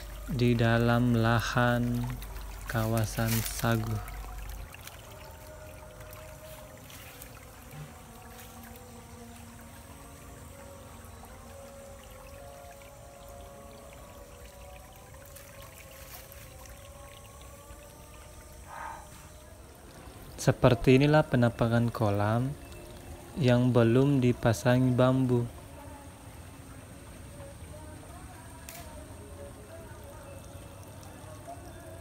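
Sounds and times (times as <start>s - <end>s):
soft background music: 0.0s - 32.0s
trickling water: 0.0s - 32.0s.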